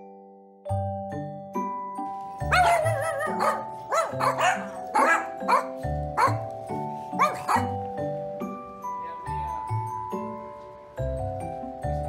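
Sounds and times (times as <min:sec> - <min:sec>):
mallet percussion music: 0:00.7 - 0:12.0
small dogs barking excitedly: 0:02.4 - 0:07.8
dog wavering cry: 0:02.5 - 0:06.4, 0:07.2 - 0:07.8.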